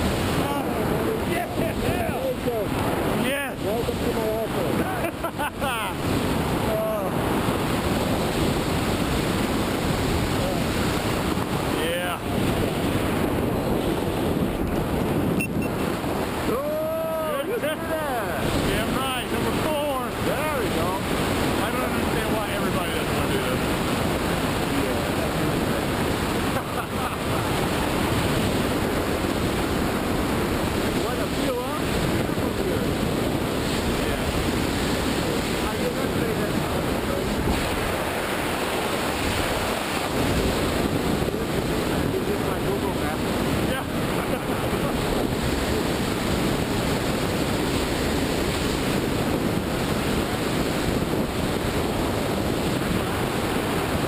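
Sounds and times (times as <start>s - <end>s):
wind rushing over microphone: 0.0s - 54.0s.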